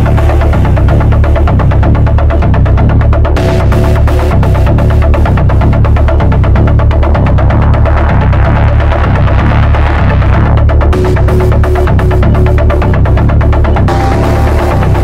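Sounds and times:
techno kick beat with bass: 0:00.0 - 0:15.0.

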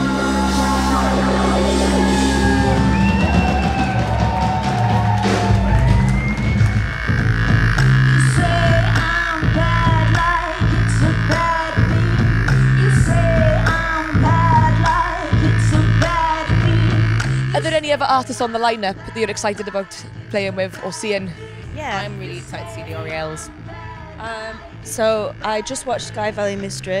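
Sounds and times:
drums beating: 0:00.0 - 0:20.6, 0:21.7 - 0:23.5
woman singing: 0:08.3 - 0:27.0.

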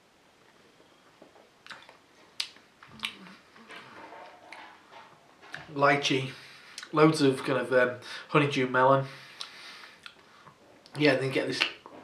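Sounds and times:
mouth clicks and lip smacks: 0:01.6 - 0:03.4, 0:09.4 - 0:11.0.

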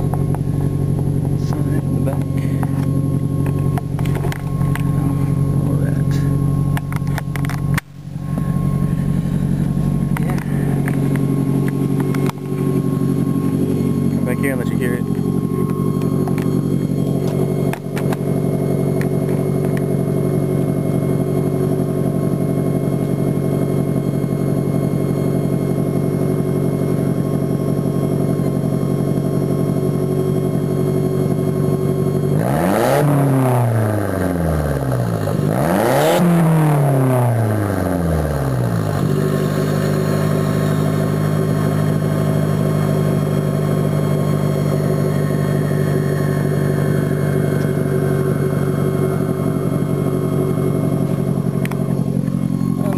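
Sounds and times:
car exhaust idling and revving: 0:00.0 - 0:52.9.

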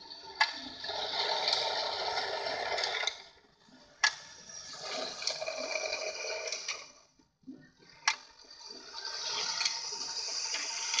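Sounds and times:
tin toy cars rattling on track: 0:00.0 - 0:03.4, 0:04.5 - 0:07.0, 0:08.0 - 0:11.0.

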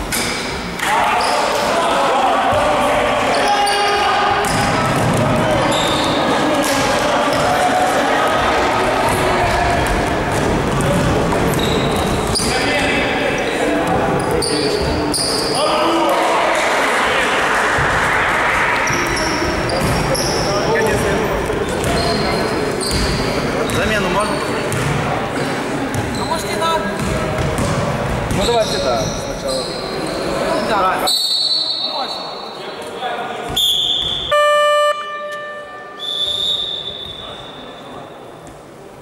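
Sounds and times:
players calling out: 0:00.8 - 0:24.4
sneakers squeaking on court floor: 0:03.3 - 0:06.5, 0:09.1 - 0:15.6, 0:18.8 - 0:25.1, 0:25.9 - 0:32.5, 0:33.5 - 0:38.5
basketball bouncing: 0:04.4 - 0:05.6, 0:09.0 - 0:12.5, 0:19.7 - 0:20.0, 0:22.9 - 0:23.8, 0:24.7 - 0:25.0, 0:27.0 - 0:28.4
loud electronic game buzzer: 0:34.3 - 0:35.8.

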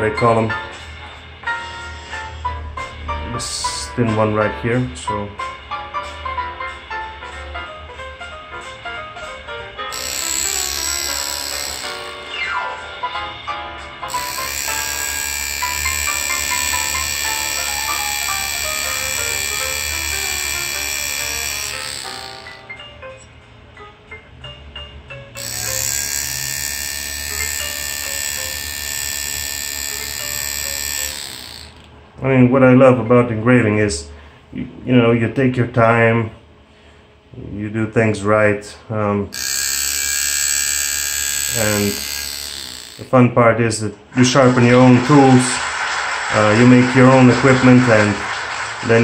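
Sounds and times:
engraving tool buzzing: 0:09.9 - 0:12.5, 0:14.1 - 0:22.7, 0:25.4 - 0:31.9, 0:39.3 - 0:43.2.

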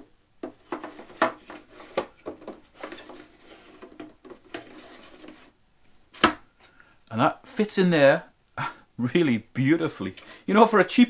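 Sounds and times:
plastic parts scraping and rubbing: 0:00.4 - 0:05.6.

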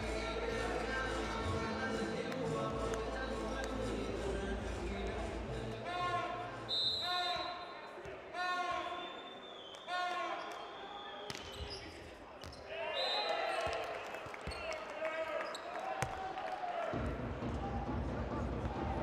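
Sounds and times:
crowd chanting: 0:00.0 - 0:06.7.

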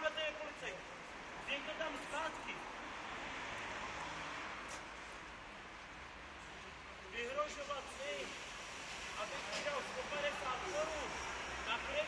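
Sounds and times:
outdoor street hiss: 0:00.0 - 0:12.0.

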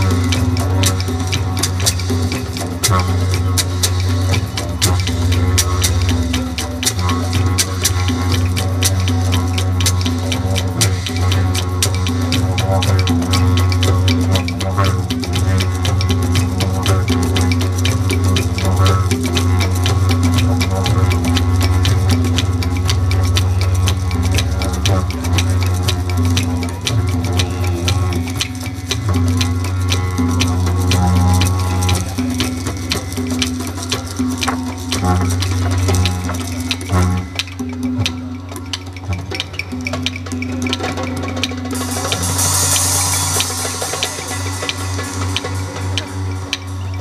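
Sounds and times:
didgeridoos droning: 0:00.0 - 0:47.0
fast percussion beat: 0:00.0 - 0:47.0
hand drums rhythm: 0:00.0 - 0:47.0
high hiss: 0:00.0 - 0:47.0.

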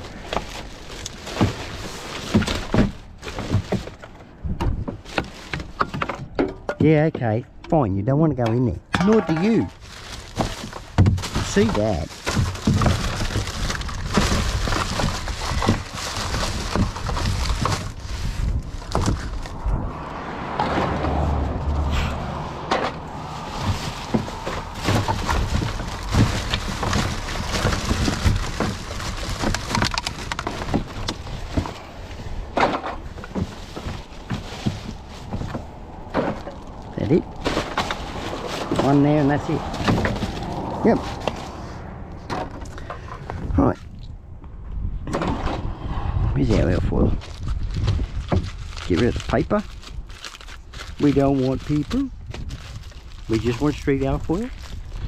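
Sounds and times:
plastic bags crinkling: 0:00.0 - 0:04.1, 0:05.0 - 0:05.8, 0:09.2 - 0:19.4, 0:23.0 - 0:32.4, 0:33.0 - 0:41.5, 0:47.2 - 0:55.0
items knocking against bin: 0:22.7 - 0:31.8.

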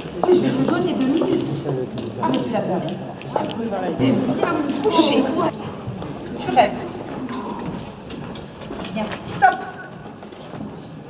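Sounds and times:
footsteps on wooden floor: 0:05.5 - 0:11.0.

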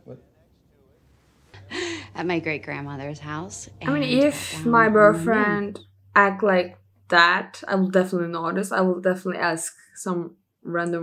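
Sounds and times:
person gasping: 0:01.6 - 0:02.1
person speaking: 0:01.6 - 0:05.8.

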